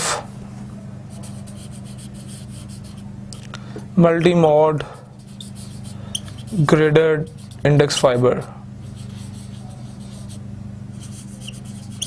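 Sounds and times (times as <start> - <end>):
steady low hum: 0.0 - 12.0
marker pen writing on whiteboard: 1.1 - 3.0, 5.2 - 10.4, 11.0 - 12.0.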